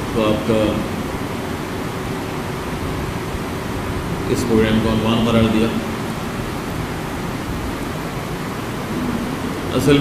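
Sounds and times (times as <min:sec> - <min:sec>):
steady background hiss: 0:00.0 - 0:10.0
man speaking: 0:00.2 - 0:00.9, 0:04.3 - 0:05.9, 0:09.7 - 0:10.0.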